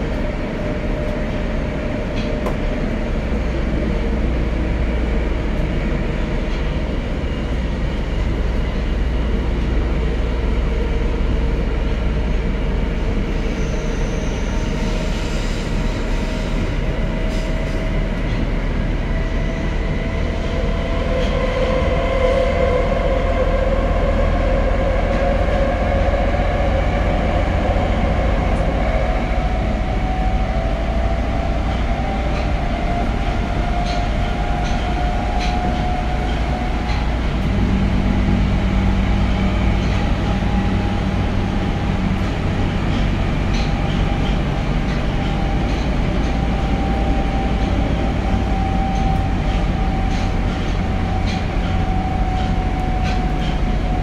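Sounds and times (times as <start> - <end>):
subway train wheels rumbling: 0.0 - 54.0.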